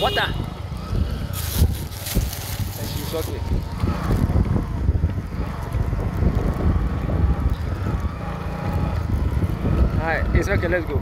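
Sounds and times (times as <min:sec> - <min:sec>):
vehicle low rumble: 0:00.0 - 0:11.0
wind buffeting microphone: 0:00.0 - 0:11.0.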